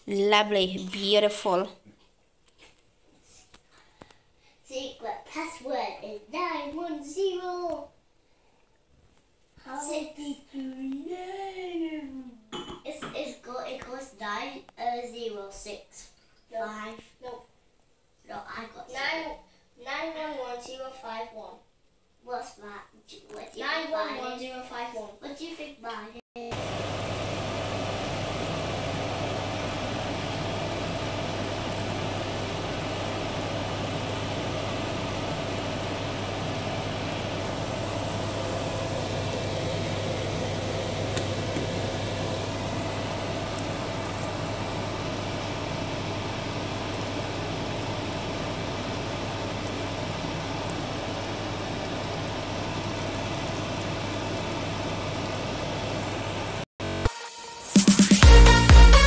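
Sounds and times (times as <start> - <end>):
extractor fan humming: 26.4 - 57.1, 57.8 - 59.0.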